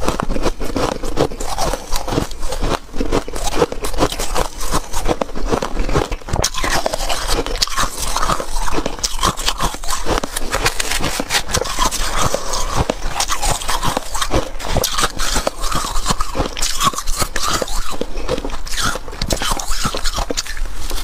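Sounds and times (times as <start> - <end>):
frost being chewed crunching: 0.0 - 21.0.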